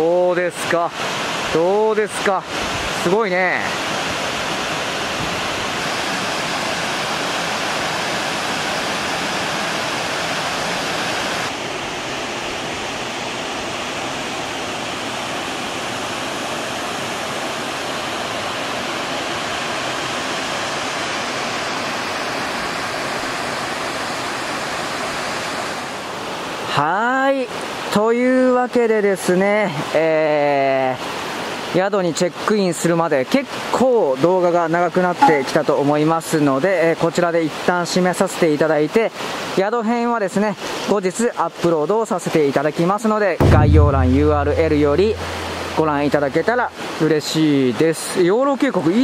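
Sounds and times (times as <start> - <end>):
waterfall rushing: 0.0 - 26.6, 43.5 - 47.7.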